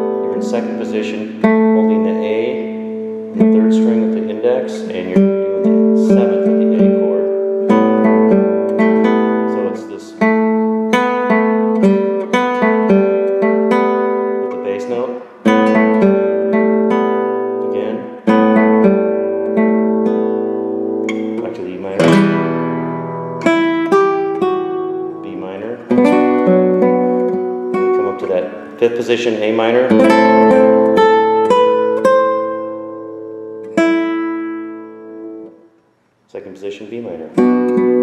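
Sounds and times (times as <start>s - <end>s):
fingerpicked classical guitar: 0.0s - 35.9s, 36.9s - 38.0s.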